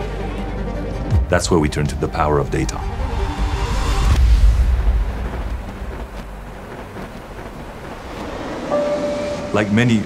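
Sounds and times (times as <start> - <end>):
steady tone: 8.7 - 10.0.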